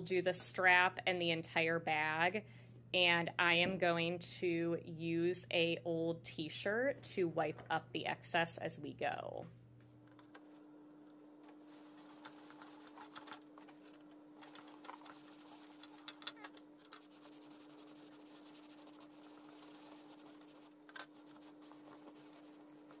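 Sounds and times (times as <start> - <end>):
brush scrubbing leather: 14.4 - 16.1, 17.0 - 23.0.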